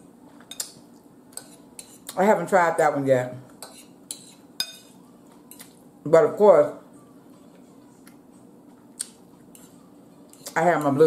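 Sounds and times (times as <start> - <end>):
faint steady hum: 0.0 - 11.0
fork clinking against bowl: 1.4 - 2.2, 3.6 - 5.7.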